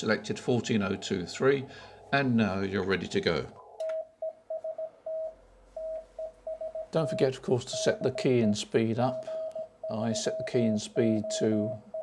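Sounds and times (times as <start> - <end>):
morse code tone: 3.9 - 12.0.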